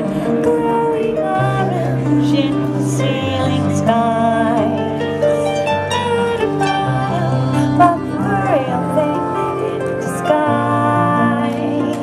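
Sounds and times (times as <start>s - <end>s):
harp plucked notes: 0.0s - 12.0s.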